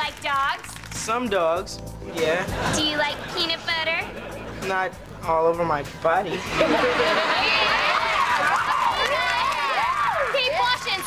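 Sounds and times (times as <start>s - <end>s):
young people laughing and whooping: 6.3s - 11.0s.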